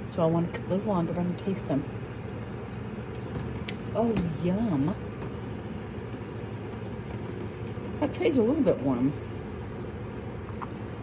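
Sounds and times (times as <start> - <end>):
dehydrator fan humming: 0.0 - 11.0.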